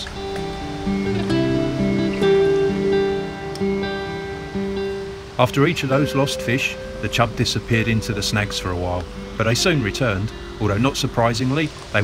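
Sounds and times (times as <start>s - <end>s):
acoustic guitar playing slowly: 0.0s - 12.0s.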